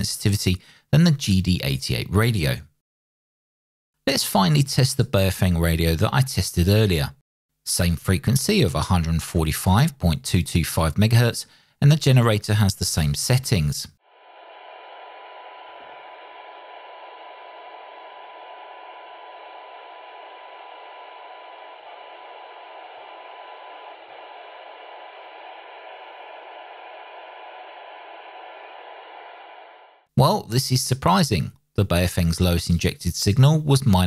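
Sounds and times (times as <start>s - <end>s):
radio receiver hiss: 17.1s - 29.8s.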